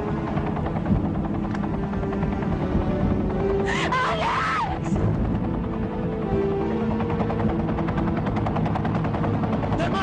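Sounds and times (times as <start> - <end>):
film score with held notes: 0.0 - 10.0.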